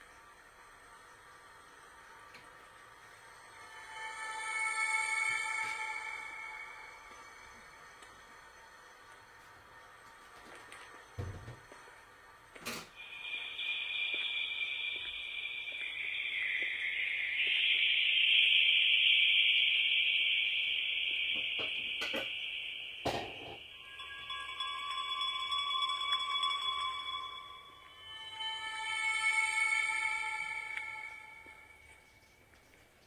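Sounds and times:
high hissing electronic drone: 0.0 - 32.6
thin steady tone: 0.0 - 33.0.

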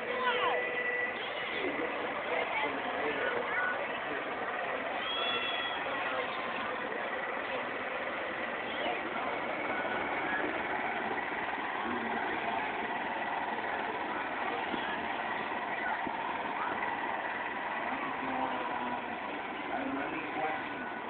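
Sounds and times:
crowd chatter outdoors: 0.0 - 21.0
small engine running: 0.0 - 21.0.

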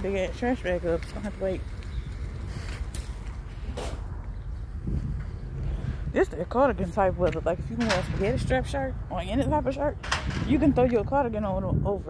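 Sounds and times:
steady low rumble: 0.0 - 12.0
footsteps on concrete: 1.0 - 5.9.

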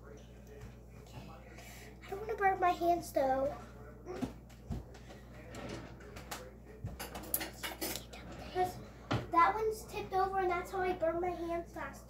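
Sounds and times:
dishes and utensils clinking: 5.6 - 9.3.

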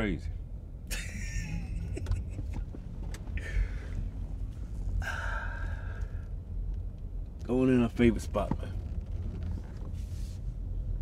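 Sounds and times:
car engine running: 0.0 - 11.0
man laughing: 0.9 - 2.7.

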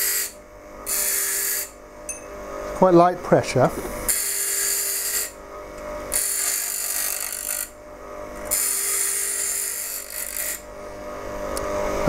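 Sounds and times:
bench grinder running: 0.0 - 1.8, 3.5 - 12.0
chisel grinding hiss: 0.0 - 1.8, 3.8 - 5.4, 6.1 - 7.7, 8.5 - 10.7.

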